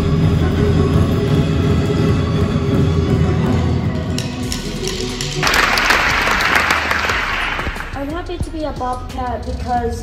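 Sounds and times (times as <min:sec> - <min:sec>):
background music: 0:00.0 - 0:10.0
audience applauding: 0:05.4 - 0:08.1.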